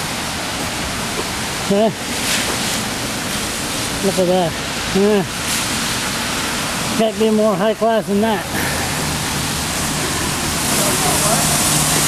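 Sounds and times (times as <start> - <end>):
steady outdoor rushing noise: 0.0 - 12.0.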